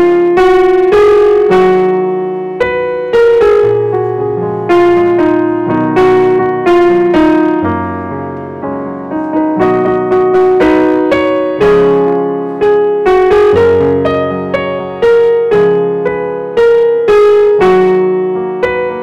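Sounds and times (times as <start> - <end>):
piano chords: 0.0 - 19.0.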